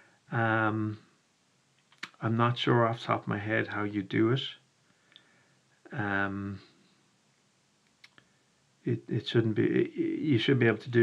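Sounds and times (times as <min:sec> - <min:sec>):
man speaking: 0:00.3 - 0:01.0, 0:02.0 - 0:04.6, 0:05.9 - 0:06.7, 0:08.9 - 0:11.0
faint clicks: 0:01.7 - 0:02.2, 0:05.1 - 0:05.3, 0:07.8 - 0:08.3.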